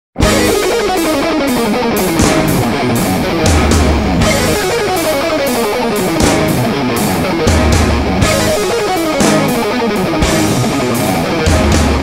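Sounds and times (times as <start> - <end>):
bass guitar: 0.2 - 12.0
drums and cymbals: 0.2 - 12.0
electric guitar runs: 0.2 - 12.0.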